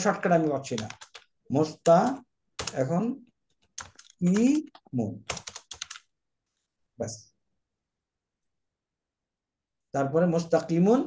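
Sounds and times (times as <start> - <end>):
man speaking: 0.0 - 3.3, 4.1 - 5.3, 7.0 - 7.4, 9.9 - 11.0
typing on keyboard: 0.3 - 1.3, 2.6 - 2.9, 3.5 - 6.1.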